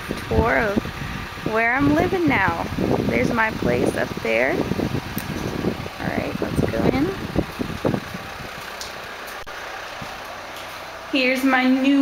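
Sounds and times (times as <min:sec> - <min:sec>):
dull low thumps: 0:00.0 - 0:10.8
background rumble and hiss: 0:00.0 - 0:12.0.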